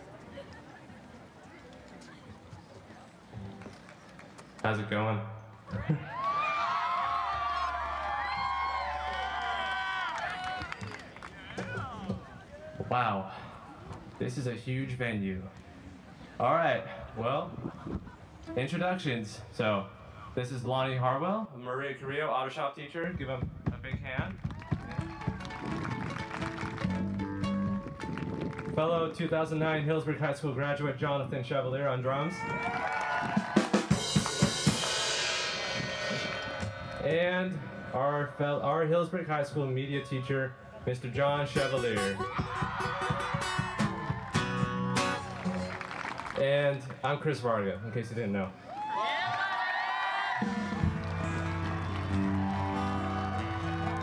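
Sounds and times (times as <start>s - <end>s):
audience cheering and whooping: 5.7s - 12.1s, 24.5s - 26.8s, 32.4s - 34.4s, 42.2s - 46.4s, 48.7s - 54.0s.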